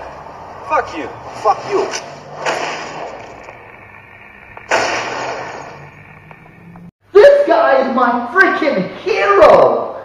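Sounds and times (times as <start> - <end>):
loud bang with long tail: 4.7 - 5.9.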